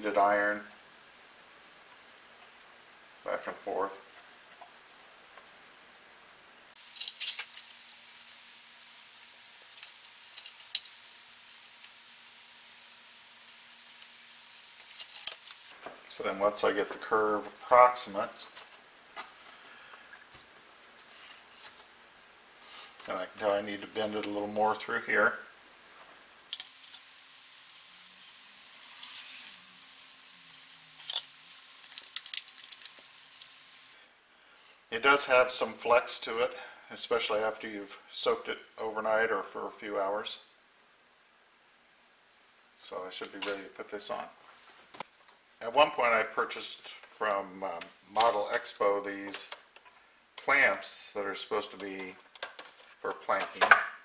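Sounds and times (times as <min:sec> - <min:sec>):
wet wood sizzling under hot iron: 0:06.8 - 0:15.8, 0:25.9 - 0:34.0.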